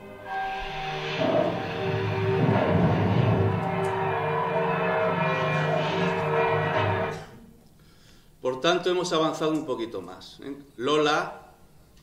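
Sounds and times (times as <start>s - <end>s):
church bells ringing: 0.0s - 7.3s
film music over loudspeakers: 0.0s - 7.4s.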